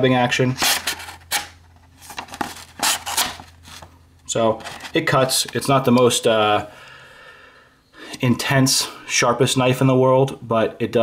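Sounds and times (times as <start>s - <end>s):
knife tearing paper: 0.6s - 3.5s.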